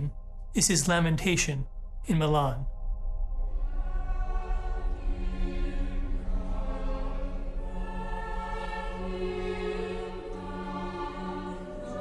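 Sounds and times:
choir holding sustained chords: 0:00.0 - 0:12.0
low drone: 0:00.0 - 0:12.0.

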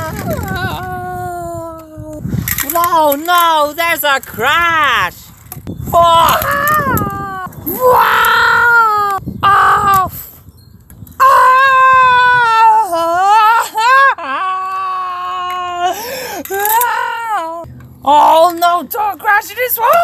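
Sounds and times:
person wailing: 0:00.0 - 0:02.2, 0:06.0 - 0:10.2, 0:11.2 - 0:17.6.

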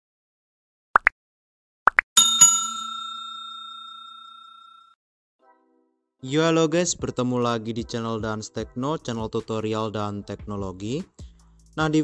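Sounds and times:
bell ringing: 0:02.2 - 0:05.0.

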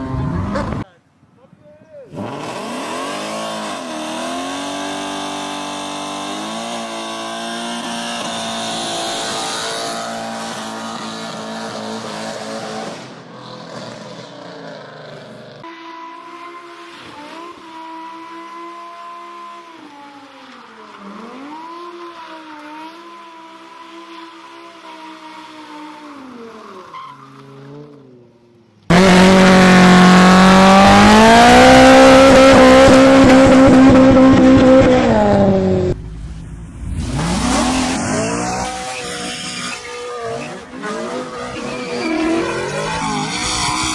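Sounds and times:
car engine revving high: 0:02.1 - 0:14.8, 0:28.9 - 0:36.1, 0:36.8 - 0:43.9
tyres spinning and squealing: 0:19.7 - 0:28.2, 0:37.0 - 0:43.9.

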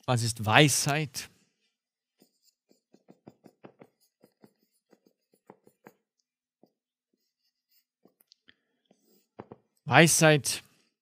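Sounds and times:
pen writing strokes: 0:02.0 - 0:08.3.

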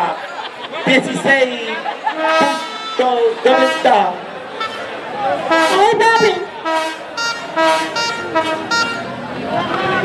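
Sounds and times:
horn short toots: 0:02.1 - 0:09.2.

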